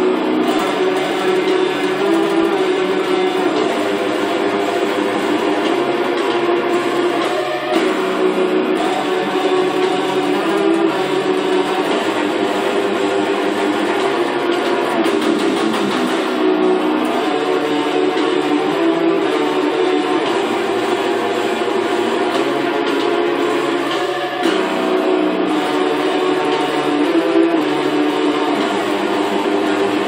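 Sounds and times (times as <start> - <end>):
electric guitar metal riff: 0.0 - 30.0.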